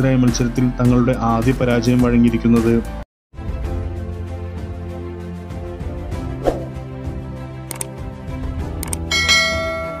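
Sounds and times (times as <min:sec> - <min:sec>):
background music: 0:00.0 - 0:10.0
quick clicks: 0:07.7 - 0:07.9, 0:08.8 - 0:09.0
bright bell chime: 0:09.1 - 0:10.0.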